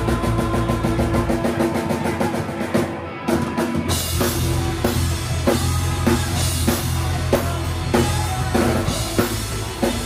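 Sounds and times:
fast drum strokes: 0.0s - 10.0s
sustained electric guitar: 0.0s - 10.0s.

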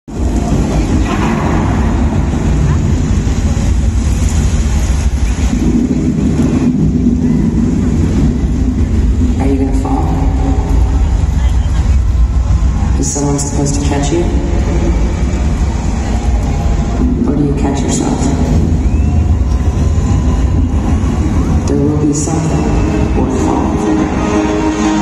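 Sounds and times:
loud concert with heavy bass: 0.1s - 25.0s.

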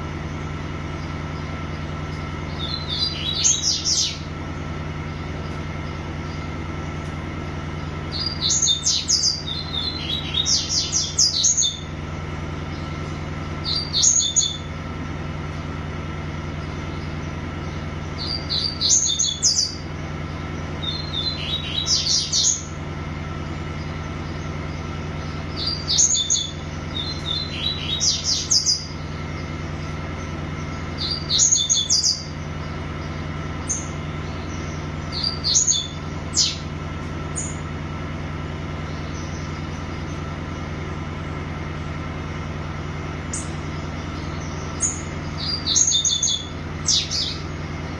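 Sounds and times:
songbird singing: 0.0s - 47.9s
steady low hum: 0.0s - 47.9s.

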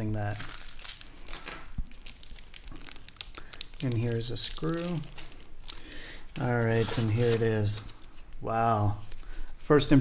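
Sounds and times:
plastic bag crinkling: 0.0s - 8.4s.

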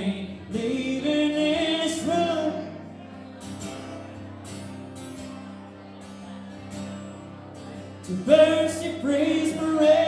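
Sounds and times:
guitars strumming country ballad: 0.0s - 10.0s.

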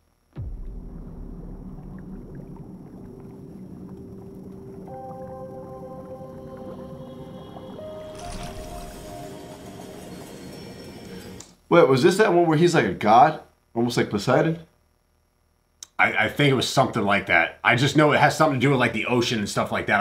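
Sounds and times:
deep steady rumble: 0.0s - 10.3s
held musical notes: 4.5s - 11.5s.

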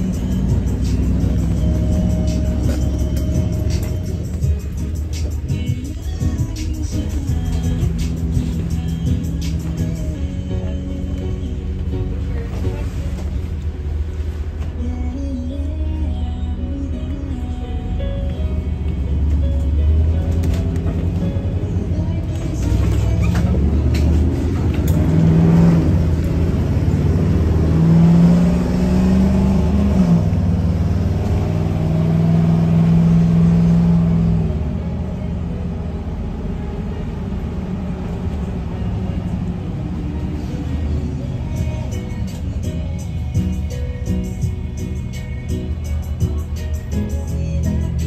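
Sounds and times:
music playing: 0.0s - 32.0s, 32.6s - 48.0s
bus engine and road rumble: 0.0s - 48.0s.

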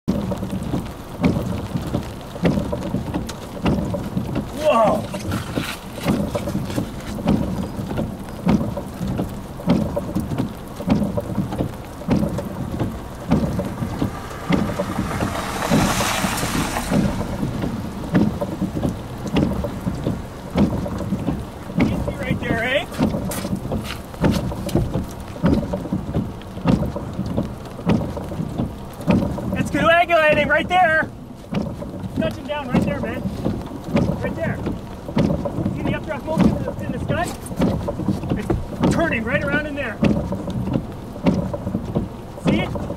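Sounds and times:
rain: 0.0s - 42.9s
thunder rumbling: 0.1s - 31.1s.

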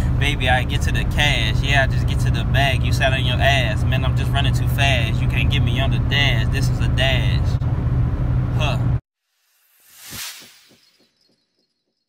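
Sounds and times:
swoosh to a hit: 9.7s - 11.0s.

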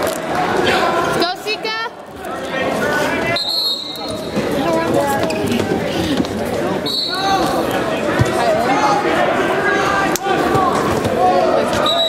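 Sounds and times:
voices calling out in gymnasium: 0.0s - 12.0s.

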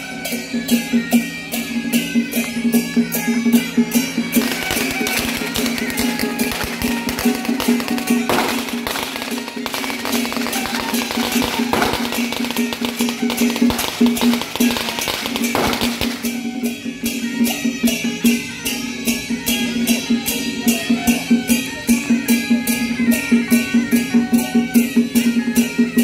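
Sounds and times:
cymbal crashes: 0.0s - 19.2s
rapid drum strikes: 2.7s - 17.6s.

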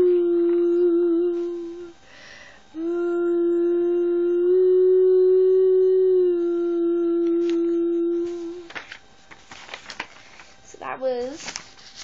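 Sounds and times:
girl singing a long note: 0.0s - 2.0s, 2.8s - 8.8s.

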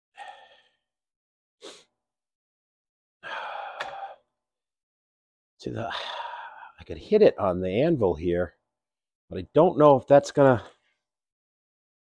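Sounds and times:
man sighing: 3.2s - 4.2s.

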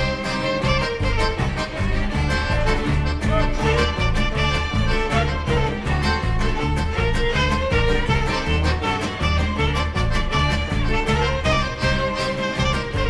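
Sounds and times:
double bass steady beat: 0.0s - 13.0s
klezmer band playing dance tune: 0.0s - 13.0s.

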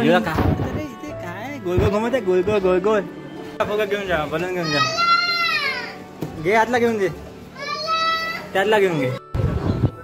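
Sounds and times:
child calling: 4.6s - 6.0s, 7.6s - 8.6s
child shouting: 4.6s - 6.0s, 7.6s - 8.6s.

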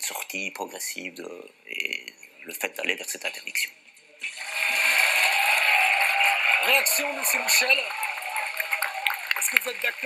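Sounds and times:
audience applauding: 4.2s - 10.0s.

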